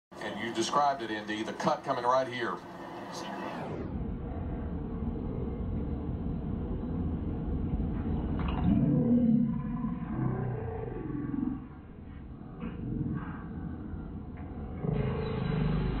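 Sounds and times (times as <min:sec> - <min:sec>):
slowed-down deep roar: 0:03.4 - 0:16.0.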